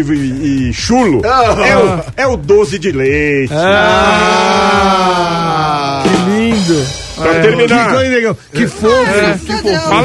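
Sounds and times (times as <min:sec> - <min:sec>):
person drawn-out vocal aaah: 0:03.5 - 0:06.7.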